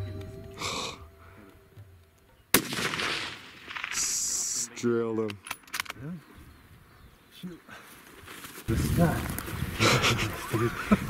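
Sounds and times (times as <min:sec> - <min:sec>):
background music: 0:00.0 - 0:02.4
rifle shot echoing: 0:02.5 - 0:04.2.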